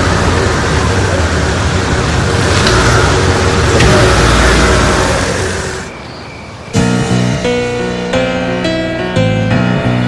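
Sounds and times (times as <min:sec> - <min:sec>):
car pulling away: 0:00.0 - 0:08.2
music: 0:06.7 - 0:10.0.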